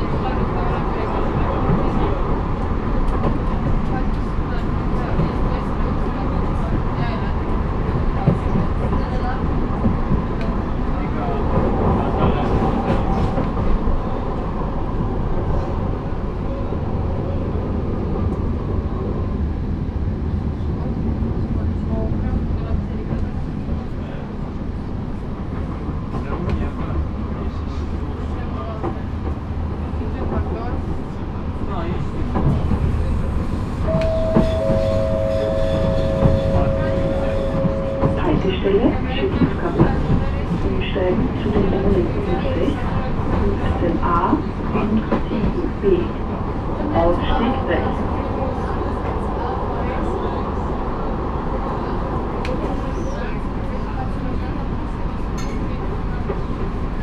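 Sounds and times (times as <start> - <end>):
train wheels rumbling on track: 0.0 - 57.0
two-note whine: 33.9 - 38.7.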